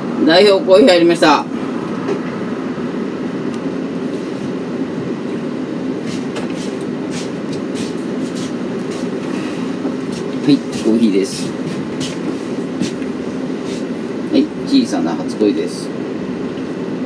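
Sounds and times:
low machine rumble: 0.0s - 17.0s.

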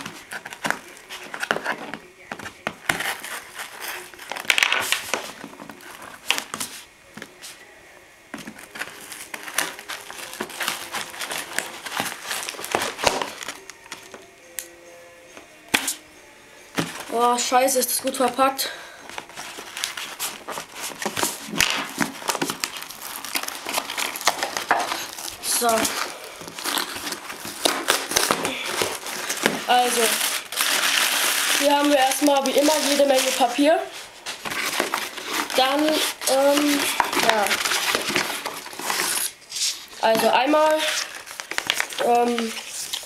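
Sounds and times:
knife slitting packing tape: 19.3s - 33.4s, 34.4s - 39.9s.

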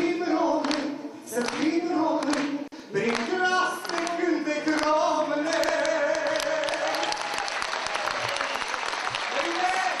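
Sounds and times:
audience applauding: 5.5s - 10.0s.

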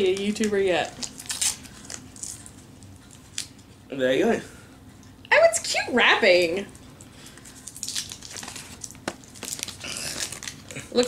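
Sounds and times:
sweet wrapper crinkling: 0.0s - 3.6s, 7.2s - 11.0s.

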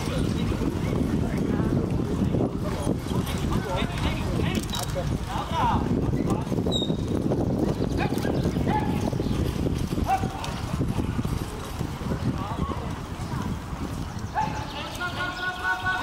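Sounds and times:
horse hoofbeats on soft ground: 5.9s - 15.6s.

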